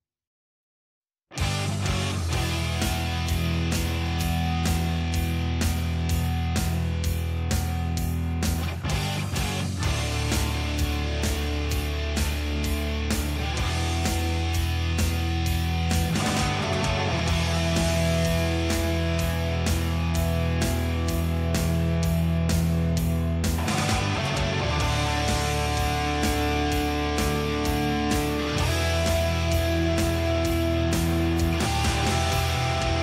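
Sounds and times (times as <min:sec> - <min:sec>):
instrumental power metal: 0:01.3 - 0:33.0.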